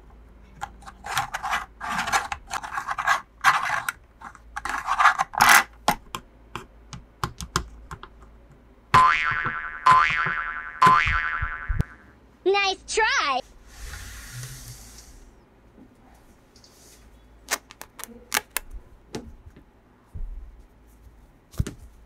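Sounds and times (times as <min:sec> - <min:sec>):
ringing boing-like tones: 0:09.0 - 0:12.1.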